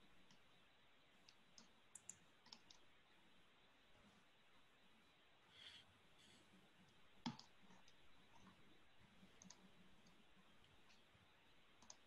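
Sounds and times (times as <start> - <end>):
faint clicks: 1.2 - 2.8, 9.4 - 11.0, 11.8 - 12.0.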